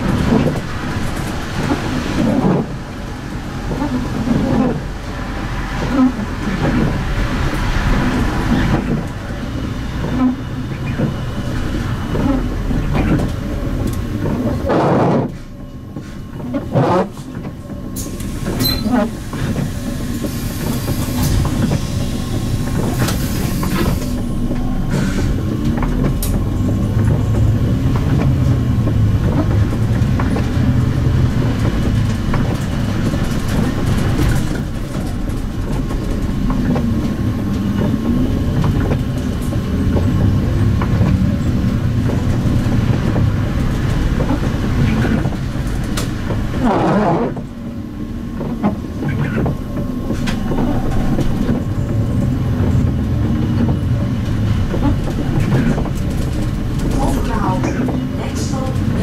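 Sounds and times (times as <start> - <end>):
bus engine and road rumble: 0.0 - 59.0
interior rattles and clicks: 0.0 - 59.0.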